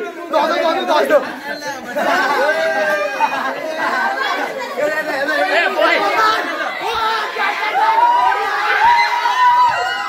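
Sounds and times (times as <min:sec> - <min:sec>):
boys talking and shouting: 0:00.0 - 0:10.0.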